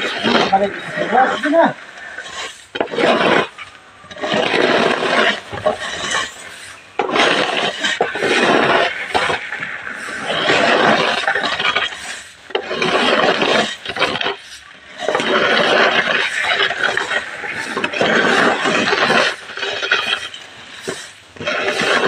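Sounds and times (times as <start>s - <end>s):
corn kernels raked on concrete: 0.0s - 22.0s.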